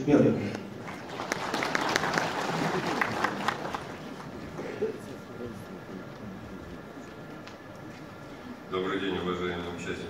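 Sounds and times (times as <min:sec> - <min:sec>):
audience applauding: 0:00.8 - 0:05.1.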